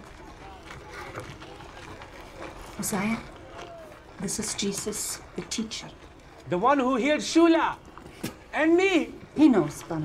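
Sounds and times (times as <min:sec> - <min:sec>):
faint distant voices: 0:00.0 - 0:10.0
outdoor ambience: 0:00.0 - 0:10.0.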